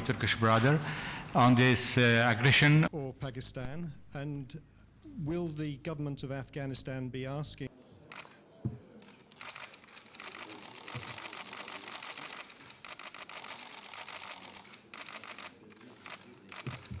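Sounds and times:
camera shutters clicking: 9.0 - 17.0.

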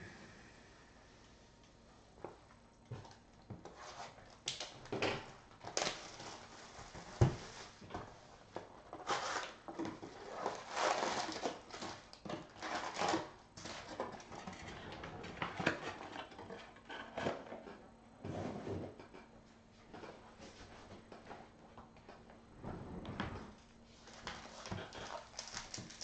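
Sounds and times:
cardboard and foil packs rustling: 2.9 - 17.6, 23.9 - 26.0
plastic shrink wrap crinkling: 3.8 - 7.9, 9.0 - 14.0, 23.3 - 26.0.

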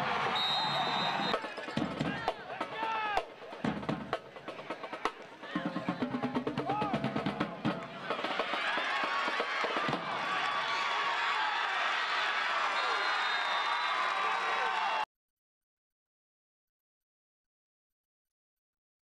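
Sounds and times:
crowd shouting: 0.0 - 3.3, 5.4 - 15.1.

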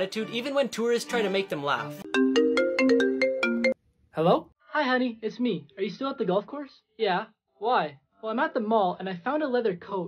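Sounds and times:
smartphone ringtone melody: 2.0 - 3.8.

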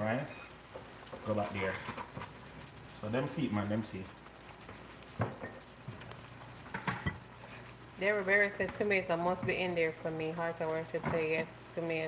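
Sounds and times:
food sizzling in a frying pan: 0.0 - 12.0.

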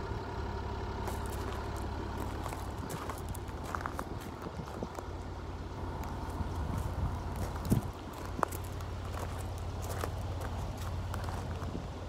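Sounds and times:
low rumble: 0.9 - 12.0
footsteps on gravel: 1.0 - 12.0.

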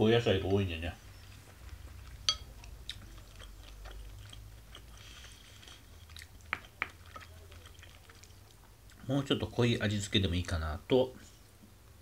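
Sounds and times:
person chewing food: 1.1 - 9.1.

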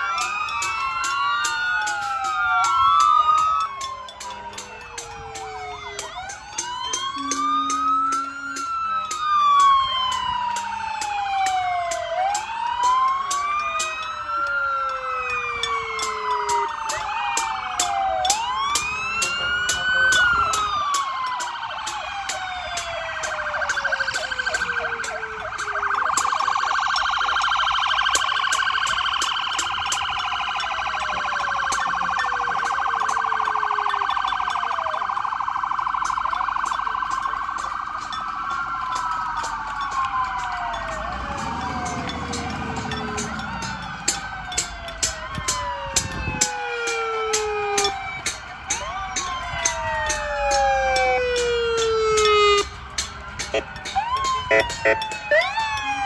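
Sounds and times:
emergency sirens wailing: 0.0 - 56.0.

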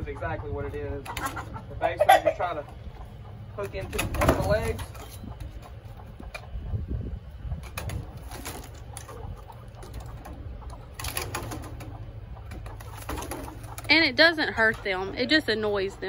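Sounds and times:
chickens calling softly: 0.0 - 16.0
chickens scuffling: 0.0 - 16.0.

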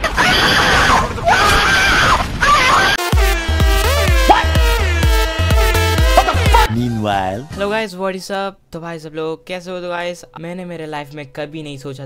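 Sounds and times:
person screaming: 0.0 - 6.8.

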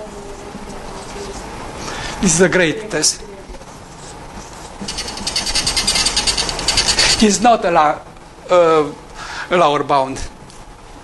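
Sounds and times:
marker squeaking on whiteboard: 4.0 - 7.3.

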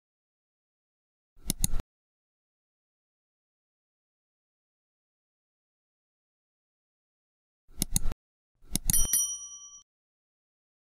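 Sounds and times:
quick mouse clicks: 1.4 - 1.8, 7.8 - 9.0
bright notification bell ding: 8.9 - 9.8.

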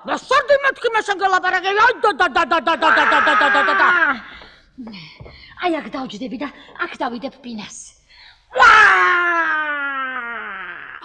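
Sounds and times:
woman speaking: 0.0 - 8.0
woman wailing: 2.8 - 4.2.

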